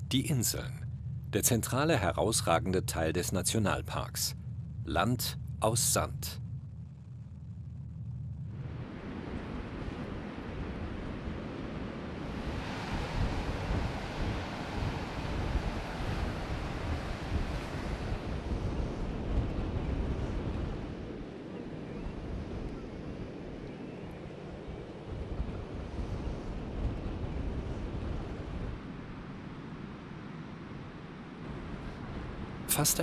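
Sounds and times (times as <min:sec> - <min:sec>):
wind buffeting microphone: 0:00.0 - 0:33.0
surf breaking on beach: 0:08.6 - 0:20.9.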